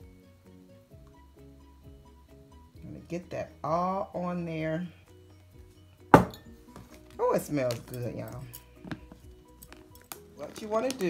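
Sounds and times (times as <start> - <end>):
glass cup clinking on table: 6.1 - 6.5.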